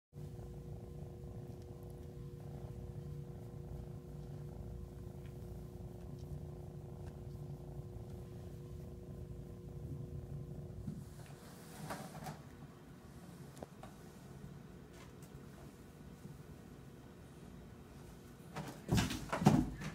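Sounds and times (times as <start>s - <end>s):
cat purring: 0.2s - 14.6s.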